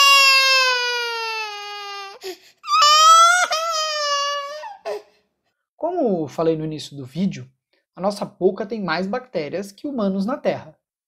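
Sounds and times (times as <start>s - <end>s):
baby crying: 0.0s - 5.2s.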